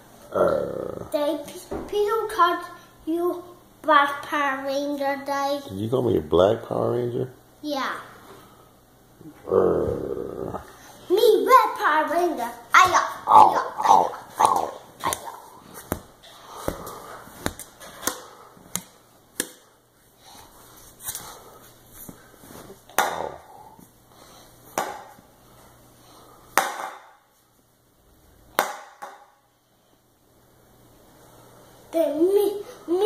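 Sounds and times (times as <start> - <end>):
plastic toy bat whacks: 26.6 - 27.1, 28.6 - 29.2.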